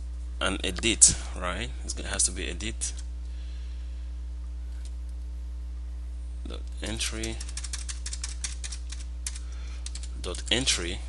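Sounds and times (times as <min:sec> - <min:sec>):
keyboard typing: 0:07.0 - 0:10.6.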